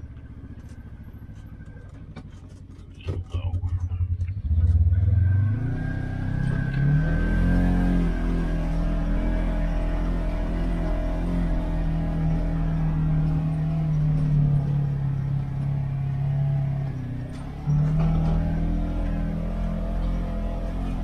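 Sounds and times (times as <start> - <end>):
off-road vehicle engine running: 0.0 - 21.0.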